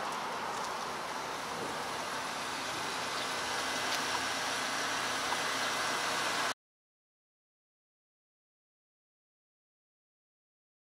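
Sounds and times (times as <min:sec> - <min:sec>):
traffic hiss: 0:00.0 - 0:06.6.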